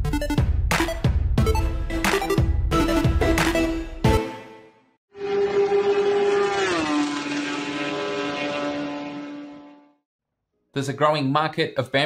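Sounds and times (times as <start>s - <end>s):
racing car engine passing by: 5.2s - 10.0s.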